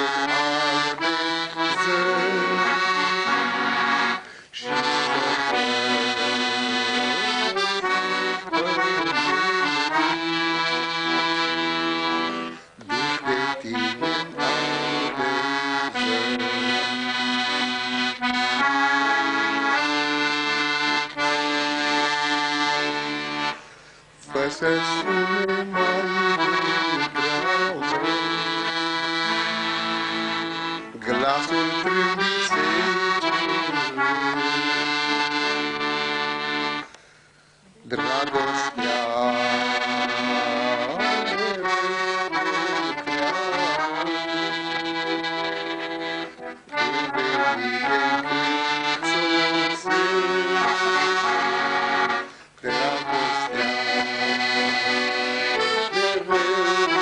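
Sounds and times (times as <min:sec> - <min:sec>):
accordion melody: 0:00.0 - 0:57.0.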